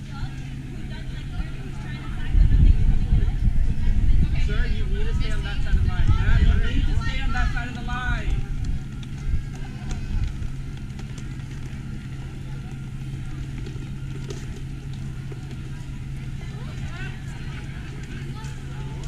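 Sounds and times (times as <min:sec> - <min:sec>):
faint background murmur: 0:00.0 - 0:19.0
steady low hum: 0:00.0 - 0:19.0
voices: 0:00.0 - 0:19.0.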